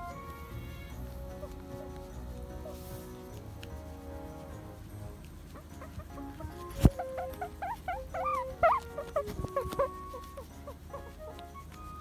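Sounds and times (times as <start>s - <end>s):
background music: 0.0s - 12.0s
guinea pig squeaking: 0.0s - 12.0s.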